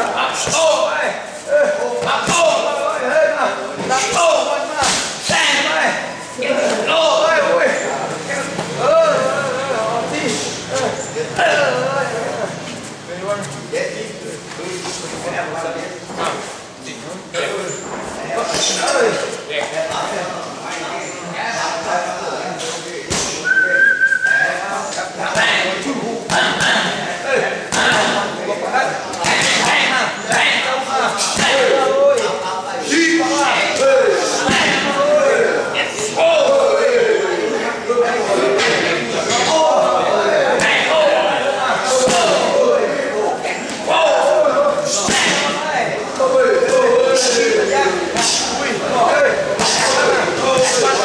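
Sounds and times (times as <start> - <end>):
whistled note: 23.4 - 24.6.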